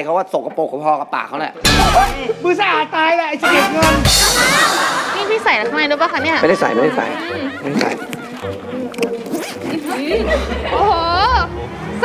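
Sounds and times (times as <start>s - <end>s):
zipper being pulled open: 7.6s - 10.1s.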